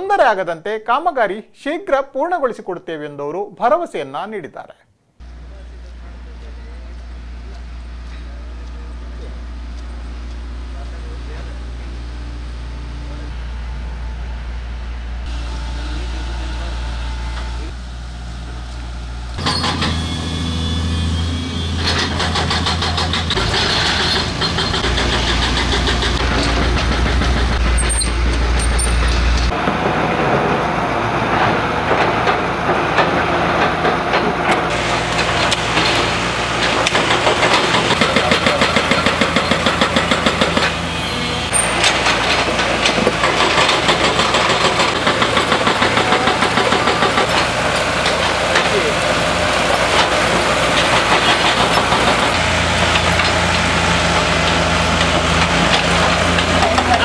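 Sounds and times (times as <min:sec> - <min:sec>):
diesel machinery engines rumbling: 0:05.2 - 0:57.0.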